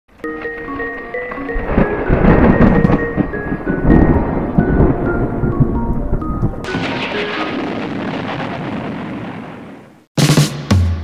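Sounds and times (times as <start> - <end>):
melody of short separate notes: 0.2 - 7.8
rolling thunder: 1.4 - 10.0.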